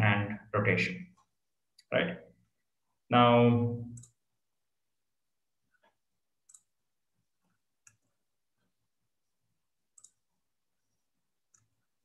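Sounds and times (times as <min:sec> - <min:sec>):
computer mouse clicks: 0:03.9 - 0:04.2, 0:05.8 - 0:06.8, 0:07.8 - 0:08.1, 0:09.9 - 0:10.3.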